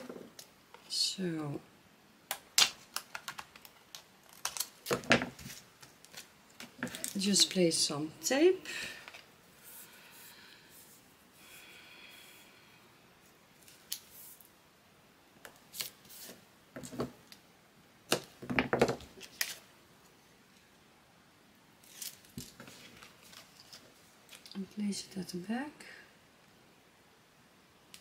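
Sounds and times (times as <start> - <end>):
tape and paper crinkling: 2.3 - 7.6, 19.1 - 19.7, 21.8 - 24.6.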